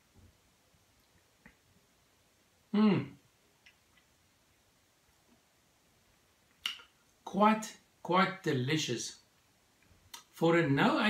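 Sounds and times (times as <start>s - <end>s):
man's appreciative mm: 2.7s - 3.2s
faint mouth clicks: 6.6s - 6.9s
lip smack: 6.6s - 6.9s.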